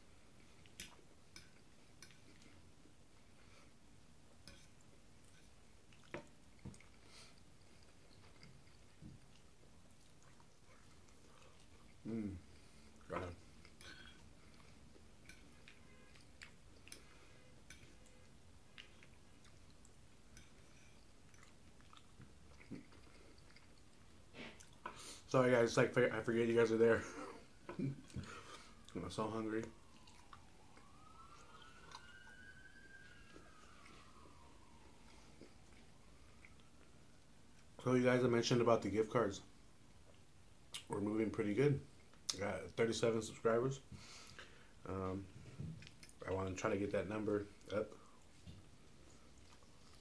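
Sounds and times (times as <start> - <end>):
person chewing: 0.4 - 3.8, 4.4 - 25.2, 29.6 - 32.4, 33.4 - 37.7, 45.7 - 46.3, 47.6 - 50.0
distant siren-like tone: 15.6 - 16.4, 27.2 - 37.4.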